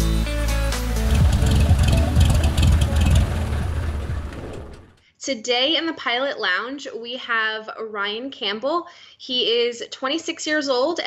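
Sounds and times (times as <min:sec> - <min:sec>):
music: 0:00.0 - 0:05.0
propeller plane engine: 0:00.9 - 0:05.0.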